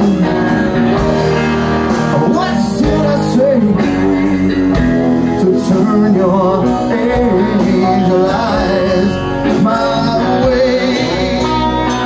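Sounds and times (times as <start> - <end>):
bass guitar: 0.0 - 12.0
drums: 0.0 - 12.0
electric guitar: 0.0 - 12.0
piano: 0.0 - 12.0.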